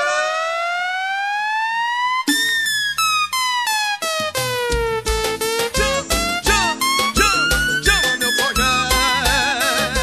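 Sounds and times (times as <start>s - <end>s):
synth lead melody: 0.0s - 10.0s
deep bass drum beat: 4.2s - 10.0s.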